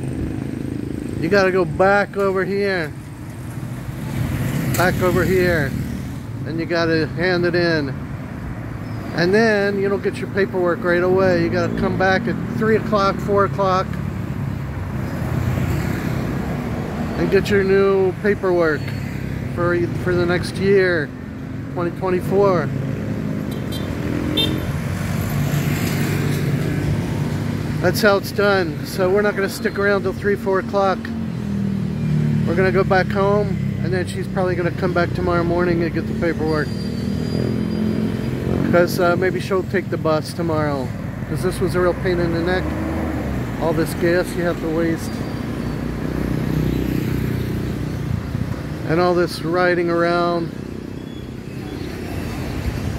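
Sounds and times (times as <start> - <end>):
street traffic: 0.0 - 52.9.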